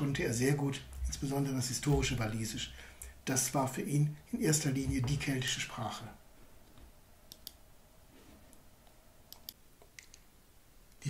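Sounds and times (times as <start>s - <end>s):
computer clicks: 7.3s - 7.6s, 9.3s - 10.3s.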